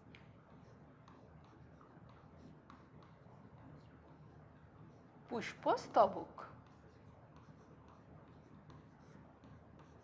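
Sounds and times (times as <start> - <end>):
pen scratching on a board: 0.6 - 5.1, 6.5 - 10.0.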